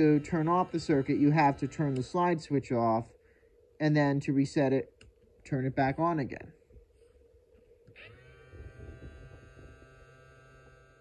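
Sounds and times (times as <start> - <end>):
faint buzzing tone: 0.0 - 3.8, 6.7 - 11.0.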